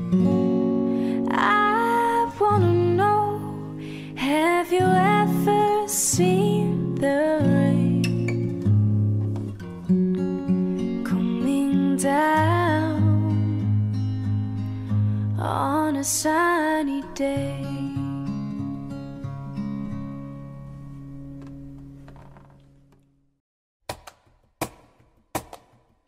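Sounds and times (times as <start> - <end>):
acoustic guitar: 0.0 - 23.0
person singing with vibrato: 1.2 - 8.2, 11.1 - 13.6.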